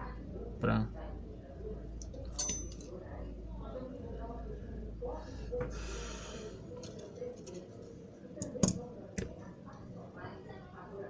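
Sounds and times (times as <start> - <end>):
low steady hum: 0.0 - 11.0
metal tool clink: 2.3 - 2.9.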